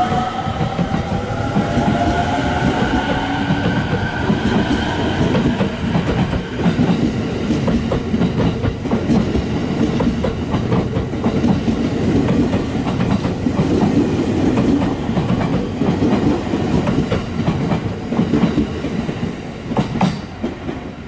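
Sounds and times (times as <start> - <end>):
train rumbling past: 0.0 - 21.0.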